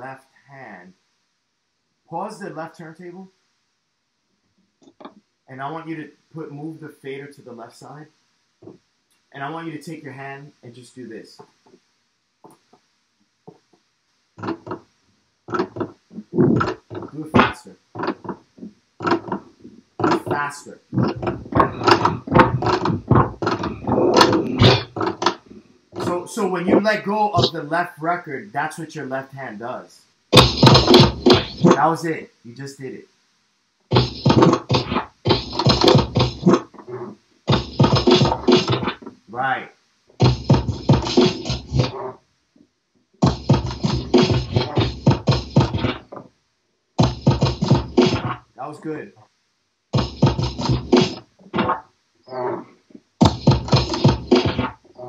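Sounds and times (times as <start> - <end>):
record beat cut by crossfader: 14.4 - 14.9, 15.5 - 27.8, 30.3 - 32.1, 33.9 - 39.2, 40.1 - 42.2, 43.2 - 46.3, 47.0 - 48.8, 49.9 - 52.6, 53.2 - 55.0
drum break from vinyl: 15.5 - 28.3, 30.3 - 32.8, 33.9 - 39.6, 40.2 - 42.2, 43.2 - 46.3, 47.0 - 49.0, 49.9 - 55.0.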